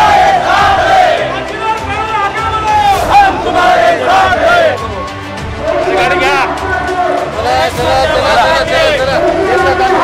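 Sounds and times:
crowd shouting slogans: 0:00.0 - 0:01.4, 0:02.7 - 0:04.9, 0:05.6 - 0:10.0.

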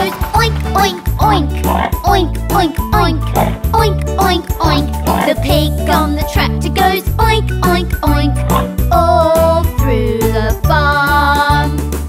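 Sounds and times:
children's song singing: 0:00.0 - 0:11.9
bouncy backing track: 0:00.0 - 0:12.0
pig oinks: 0:00.8 - 0:02.3, 0:03.0 - 0:03.8, 0:04.6 - 0:05.6, 0:08.4 - 0:08.8.

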